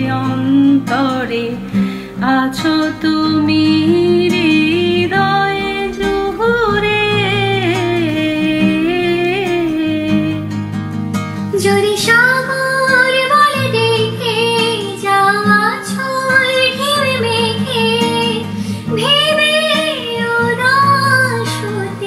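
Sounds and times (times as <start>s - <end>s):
woman singing: 0.0s - 10.8s, 11.4s - 22.0s
guitar accompaniment: 0.0s - 22.0s.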